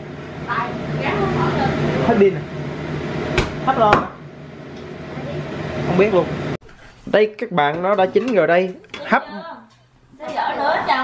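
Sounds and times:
steady low hum: 0.0 - 11.0
voices talking: 0.5 - 2.6.

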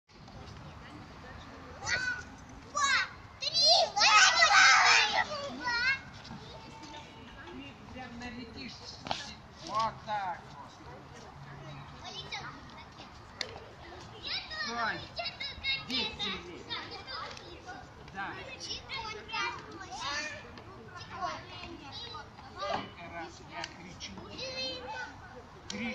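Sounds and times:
children calling and chattering: 0.1 - 25.9
children shrieking: 3.7 - 5.3.

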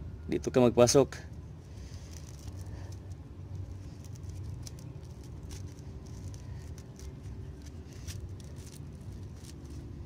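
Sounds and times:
steady low hum: 0.0 - 10.0
rope fibres crackling: 1.1 - 10.0.

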